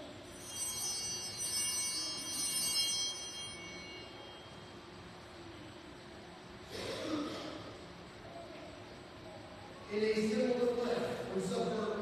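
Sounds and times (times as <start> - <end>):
small hand bells ringing: 0.0 - 5.1.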